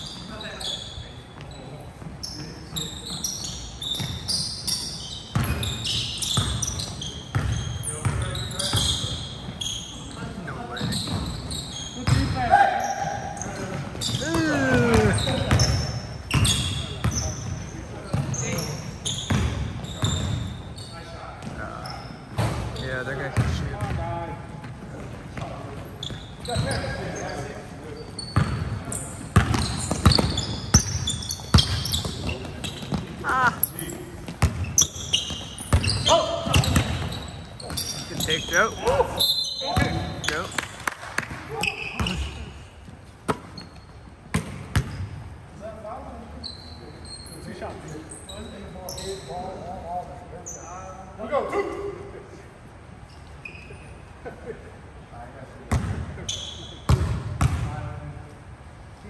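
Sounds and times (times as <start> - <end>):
shoe squeaks: 0.0 - 23.9, 25.4 - 40.8, 41.5 - 51.9, 53.0 - 54.2, 56.2 - 57.1
basketball bouncing on wooden floor: 7.3 - 8.2, 29.4 - 33.1
players shouting: 14.2 - 15.3.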